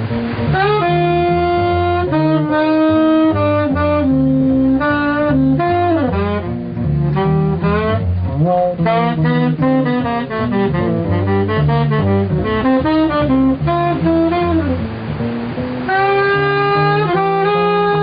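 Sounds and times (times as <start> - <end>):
plucked double bass: 0.0 - 18.0
tenor saxophone melody: 0.0 - 18.0.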